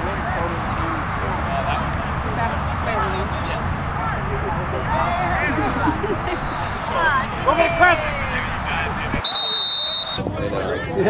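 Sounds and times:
distant voices shouting: 2.9s - 10.9s.

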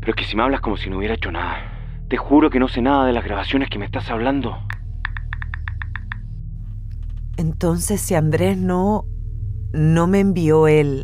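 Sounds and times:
low steady music hum: 0.0s - 11.0s.

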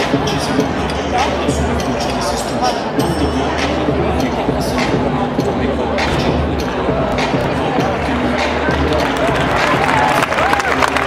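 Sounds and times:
spectators' voices: 0.0s - 11.0s.

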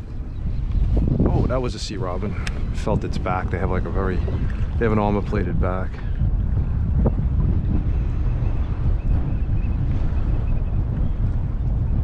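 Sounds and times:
choppy water: 0.0s - 12.0s
wind buffeting microphone: 0.0s - 12.0s.

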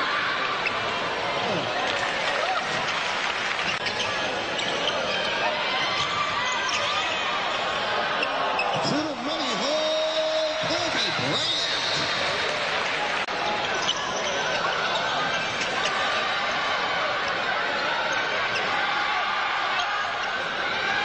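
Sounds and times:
arena crowd noise: 0.0s - 21.0s.

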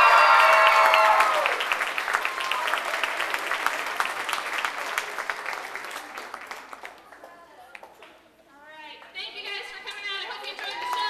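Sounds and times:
high-pitched cheering voices: 0.0s - 1.6s
audience applauding: 0.0s - 8.0s, 10.5s - 11.0s.

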